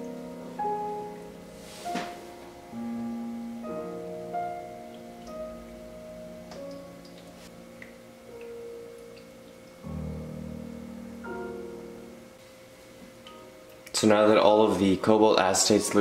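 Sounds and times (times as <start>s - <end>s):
slow held keyboard notes: 0.0s - 15.1s.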